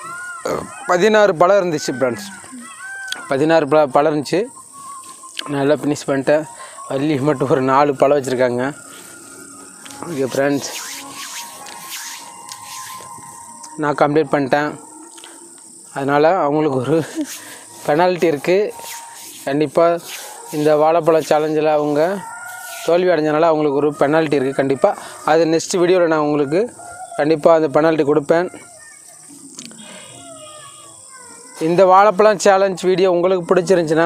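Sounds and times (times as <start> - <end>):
man making wavering sound: 0.0 - 3.2, 9.8 - 15.3
faint animal calls: 0.0 - 3.8, 6.4 - 27.7, 28.5 - 31.8
crickets chirring: 0.0 - 34.0
steady high hiss: 0.0 - 34.0.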